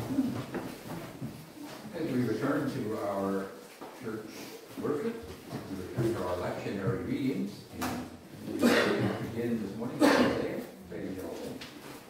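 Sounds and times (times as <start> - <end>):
people reading aloud in a hall: 0.0 - 12.0.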